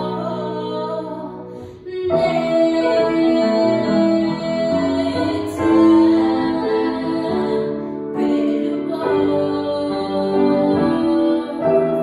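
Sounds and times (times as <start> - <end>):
upright piano: 0.0 - 12.0
woman singing pop ballad: 0.0 - 12.0.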